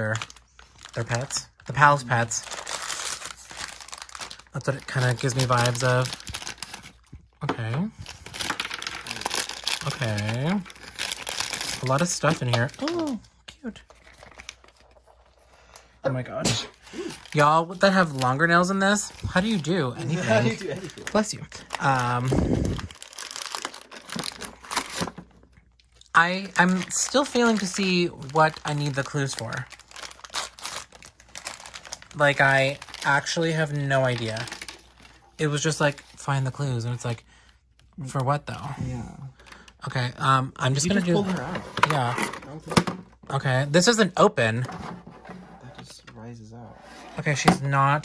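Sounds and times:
packaging crinkling and rustling: 0:00.0 - 0:07.2, 0:08.0 - 0:15.5, 0:16.7 - 0:36.2.

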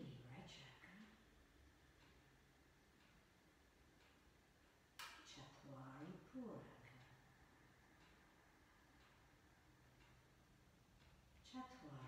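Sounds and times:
woman speaking softly: 0:00.0 - 0:01.2, 0:05.3 - 0:07.2, 0:11.4 - 0:12.0.

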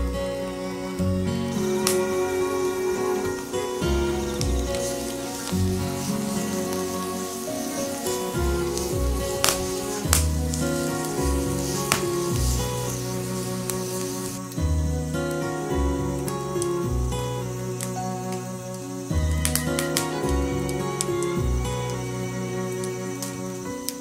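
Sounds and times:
background music: 0:00.0 - 0:24.0
bamboo tube sizzling hiss: 0:00.3 - 0:24.0
sharp pops: 0:06.5 - 0:13.0.

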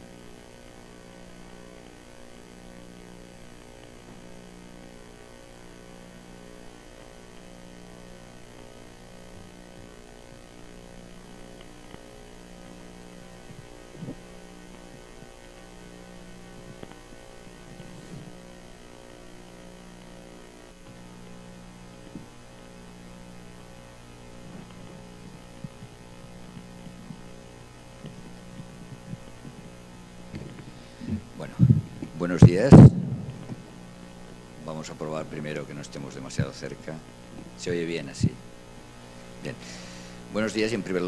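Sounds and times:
electrical mains hum: 0:00.0 - 0:41.0
pulsing low tone: 0:30.3 - 0:34.3.

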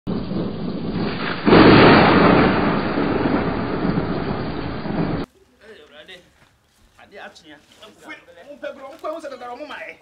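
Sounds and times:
thunder rumbling: 0:00.1 - 0:05.3.

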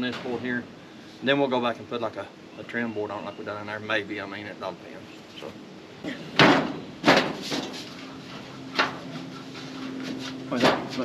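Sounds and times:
metal roofing sheet banging on wood: 0:06.3 - 0:07.9, 0:10.6 - 0:11.0.

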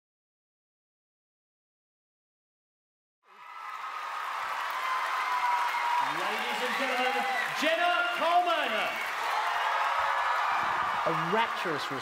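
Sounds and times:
audience applauding and cheering: 0:03.3 - 0:12.0.

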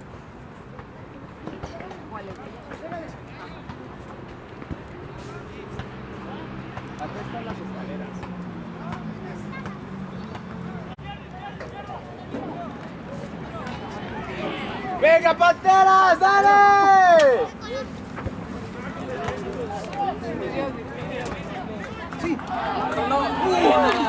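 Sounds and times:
several voices talking: 0:00.6 - 0:24.0.

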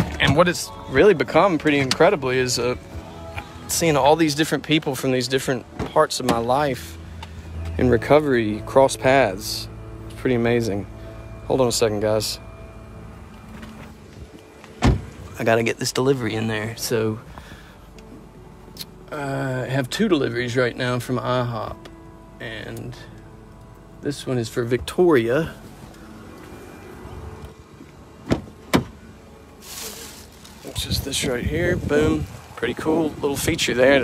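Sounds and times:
car door shutting: 0:00.0 - 0:00.6, 0:01.5 - 0:02.2, 0:05.7 - 0:06.6, 0:13.2 - 0:15.4, 0:25.9 - 0:29.1
low background rumble: 0:00.0 - 0:34.0.

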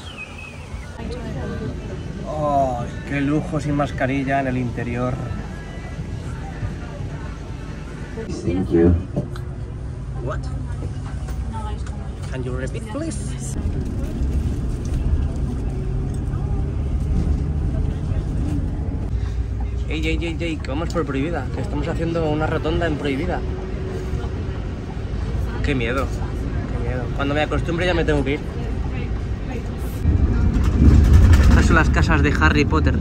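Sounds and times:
bus engine and road rumble: 0:00.0 - 0:33.0.

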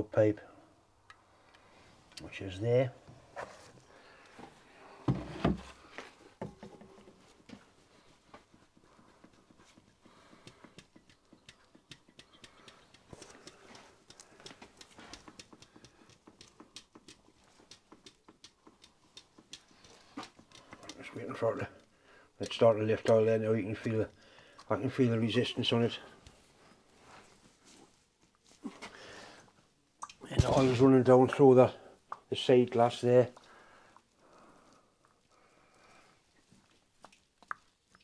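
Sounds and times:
oil pump clicking: 0:08.8 - 0:21.1.

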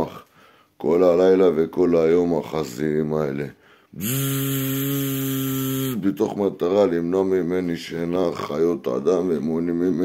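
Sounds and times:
man imitating buzzing: 0:04.0 - 0:06.1.

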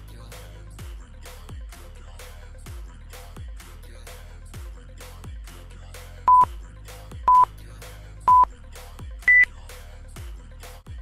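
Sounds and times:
timer beeps: 0:06.3 - 0:06.5, 0:07.3 - 0:07.5, 0:08.3 - 0:08.5, 0:09.3 - 0:09.5.

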